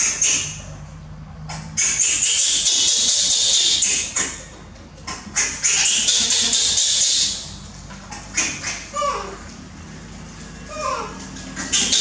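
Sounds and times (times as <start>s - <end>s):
baby monkey screaming: 5.4s - 7.5s, 8.3s - 9.4s, 10.7s - 12.0s.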